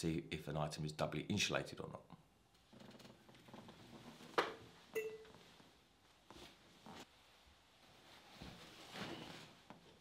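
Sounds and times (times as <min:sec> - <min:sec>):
soft rustle: 0:03.1 - 0:10.0.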